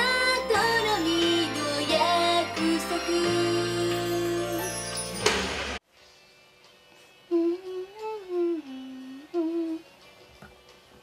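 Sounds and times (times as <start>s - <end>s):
woman humming: 7.3s - 9.9s.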